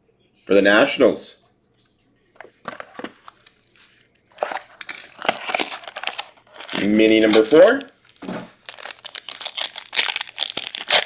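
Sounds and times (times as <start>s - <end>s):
plastic shrink wrap crinkling and tearing: 4.3s - 11.0s.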